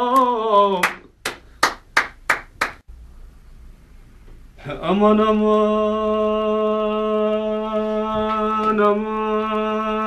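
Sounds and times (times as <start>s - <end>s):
sharp hand claps: 0.2s - 2.8s.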